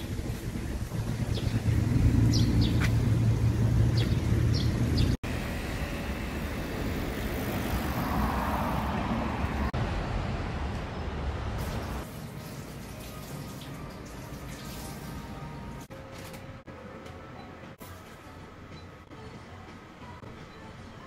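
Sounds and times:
vehicle rumbling past: 0.0 - 12.0
street traffic noise: 0.0 - 21.0
car passing: 1.0 - 12.0.

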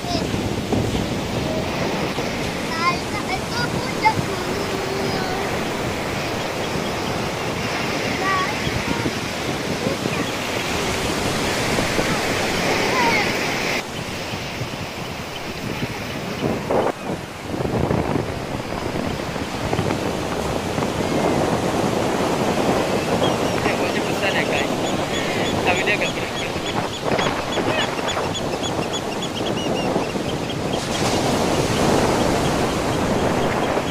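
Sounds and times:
waves breaking on beach: 0.0 - 33.9.

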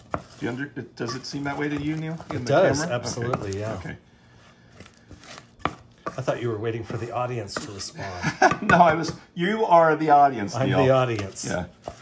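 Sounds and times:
wooden spoon scraping saucepan: 0.0 - 8.1, 10.4 - 12.0.

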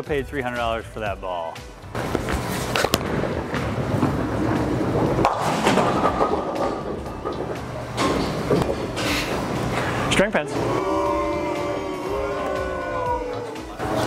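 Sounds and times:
bowling alley background noise: 1.8 - 14.0
bowling ball rolling down lane: 2.0 - 8.8
bowling pins clattering: 2.0 - 9.5.

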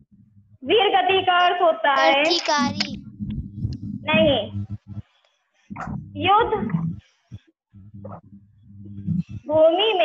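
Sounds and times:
person saying a short word: 2.0 - 3.0.

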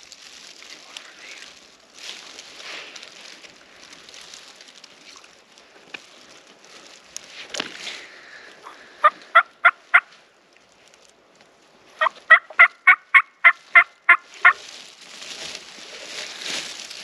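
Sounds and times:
turkey hen yelping: 12.0 - 14.6.

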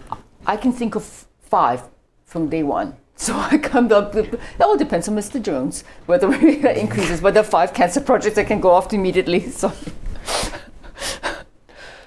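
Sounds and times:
person breathing in: 10.2 - 12.0.

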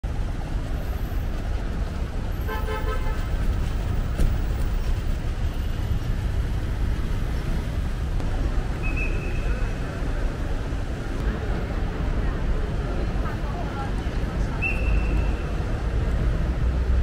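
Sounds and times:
low traffic rumble: 0.0 - 17.0
car horn toot: 2.5 - 3.2.

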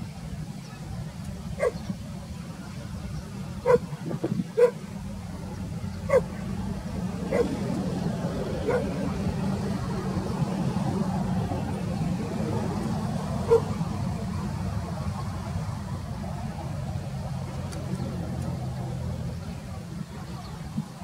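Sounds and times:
low engine rumble: 0.0 - 21.0
dog bark: 1.6 - 1.8, 3.6 - 4.0, 4.6 - 4.8, 6.1 - 6.4, 7.3 - 7.6, 8.6 - 8.9, 13.5 - 13.7.

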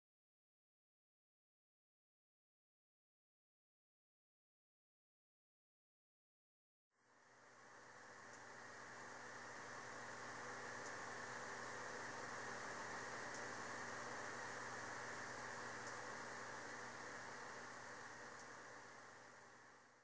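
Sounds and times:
low electrical hum: 6.9 - 20.0
faint steady hiss: 7.0 - 20.0
faint high tick: 8.3 - 8.6, 10.8 - 11.0, 13.2 - 13.6, 15.8 - 16.1, 18.3 - 18.6.

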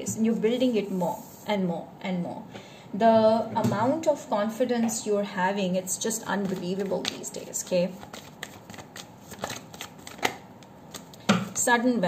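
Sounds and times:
cards being shuffled: 6.4 - 11.6.

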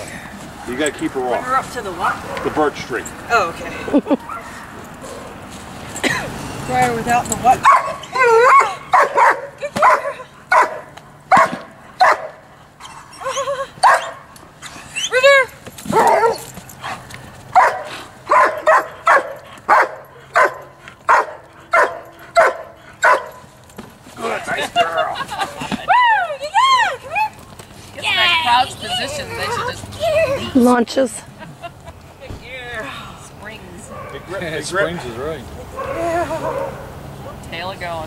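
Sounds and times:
dog barking: 7.6 - 12.4, 13.8 - 14.2, 17.5 - 23.4, 33.9 - 34.4, 35.8 - 36.9.

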